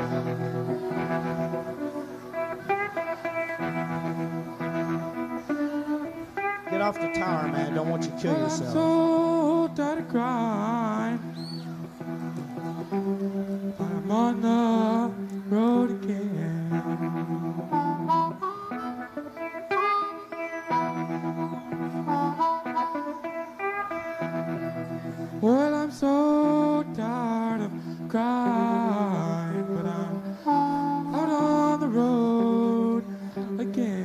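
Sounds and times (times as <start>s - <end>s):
blues-rock band playing: 0.0s - 34.0s
electric guitar: 0.0s - 34.0s
harmonica bent notes: 0.0s - 34.0s.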